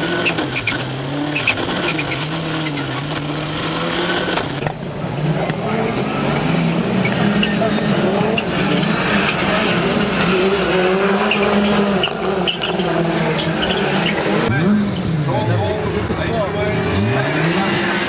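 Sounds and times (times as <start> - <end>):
race car engines revving: 0.0 - 18.0.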